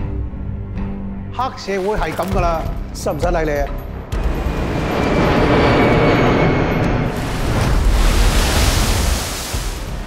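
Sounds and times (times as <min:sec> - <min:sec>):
rushing rumble soundtrack: 0:03.9 - 0:10.0.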